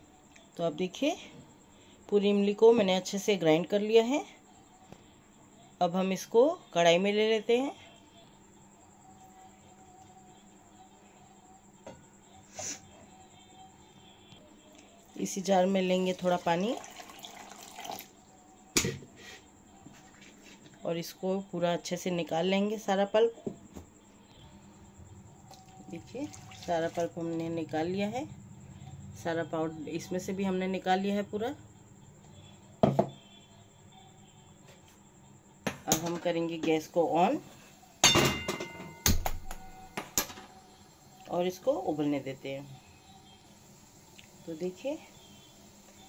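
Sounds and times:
water pouring into steel jar: 0:16.7 - 0:18.1, 0:26.3 - 0:27.1.

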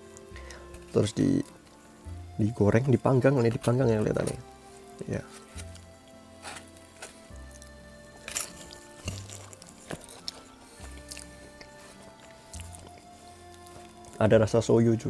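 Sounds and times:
quiet music with slow bass: 0:00.0 - 0:15.0
wet chewing and biting: 0:05.6 - 0:14.2.

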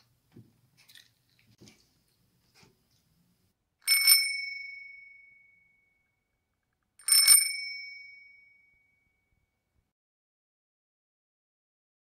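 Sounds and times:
small metal bell ringing: 0:03.8 - 0:06.1, 0:07.0 - 0:09.3.

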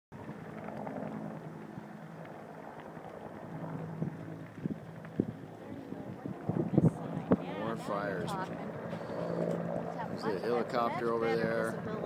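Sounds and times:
low engine drone: 0:00.2 - 0:12.0
wind noise on microphone: 0:03.6 - 0:07.8.

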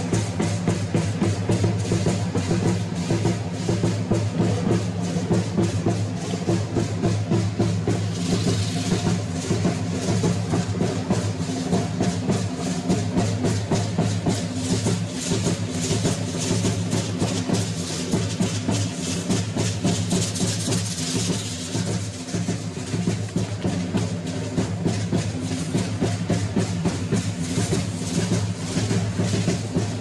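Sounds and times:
drum-led percussion: 0:00.0 - 0:30.0.

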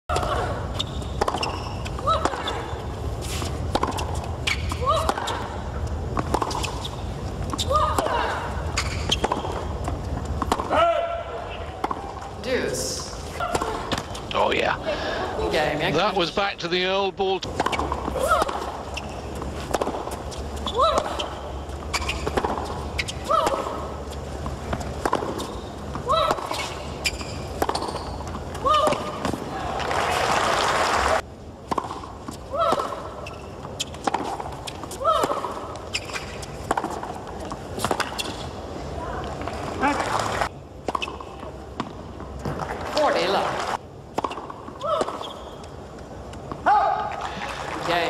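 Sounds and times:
racket striking tennis ball: 0:03.3 - 0:05.4, 0:08.8 - 0:10.8, 0:17.5 - 0:21.4, 0:22.0 - 0:29.4, 0:33.9 - 0:38.5
crowd noise: 0:28.9 - 0:31.2.

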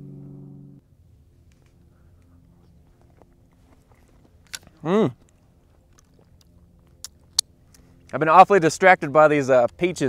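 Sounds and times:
wet chewing: 0:03.0 - 0:07.9
man humming appreciatively: 0:04.8 - 0:05.2.

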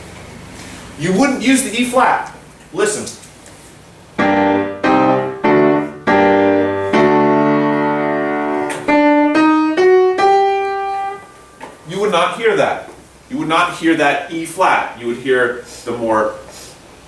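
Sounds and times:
piano chords and melody: 0:04.2 - 0:11.9.

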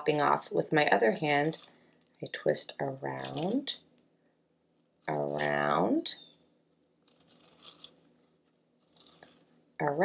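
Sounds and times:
pencil sharpener scraping: 0:01.1 - 0:01.8, 0:07.0 - 0:08.1, 0:08.8 - 0:09.6.

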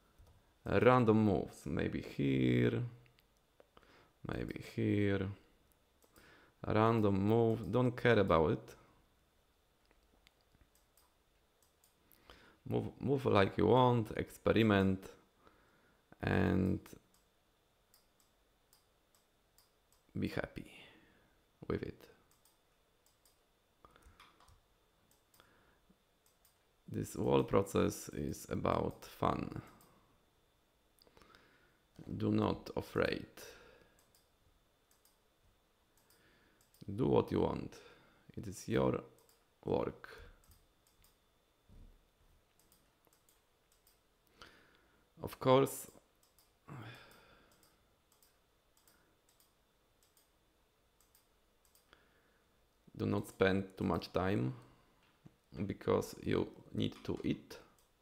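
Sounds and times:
computer mouse clicks: 0:06.0 - 0:06.3, 0:09.8 - 0:12.0, 0:22.3 - 0:23.4, 0:26.2 - 0:26.6, 0:34.0 - 0:34.3, 0:34.9 - 0:35.2, 0:35.9 - 0:36.9, 0:39.2 - 0:39.4, 0:40.4 - 0:41.2, 0:42.5 - 0:44.0, 0:45.8 - 0:50.3, 0:51.0 - 0:52.0.

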